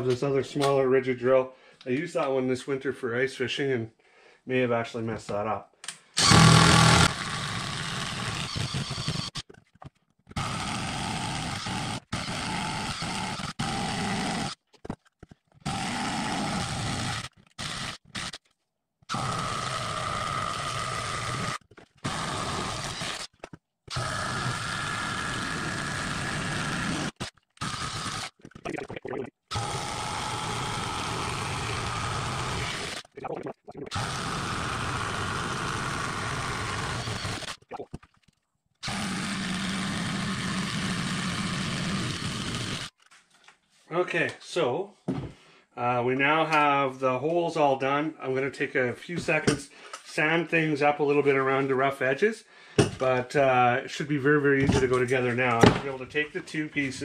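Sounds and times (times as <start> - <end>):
cordless drill boring through wood: 6.2 - 9.6, 10.3 - 14.6, 15.6 - 18.4, 19.1 - 28.4, 29.5 - 33.2, 33.9 - 37.7, 38.8 - 43.0.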